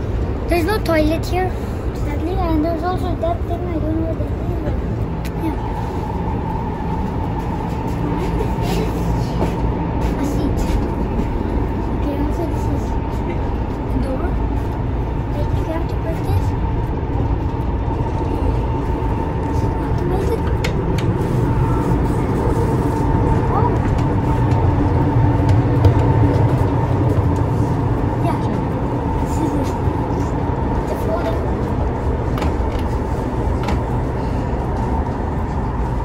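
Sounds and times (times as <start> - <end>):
train running rumble: 0.0 - 36.0.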